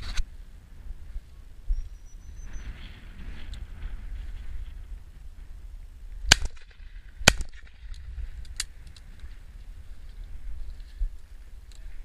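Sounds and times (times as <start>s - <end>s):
wind rumbling on microphone: 0.0s - 12.0s
shotgun shots: 6.3s - 7.8s.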